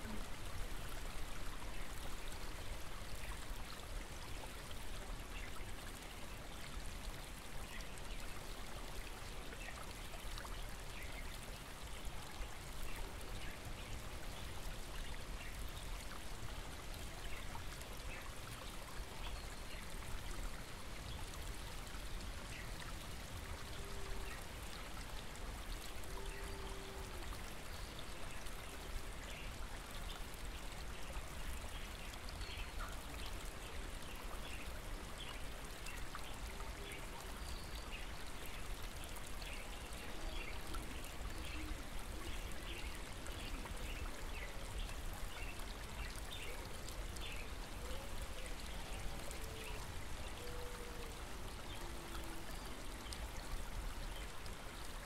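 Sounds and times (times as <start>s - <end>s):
small stream running: 0.0s - 55.0s.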